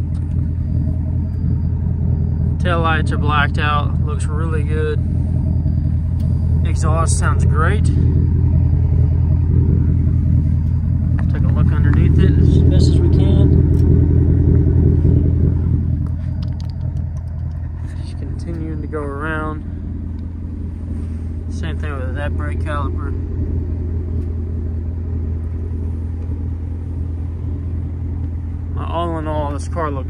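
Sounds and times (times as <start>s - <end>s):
car engine idling: 0.0s - 30.0s.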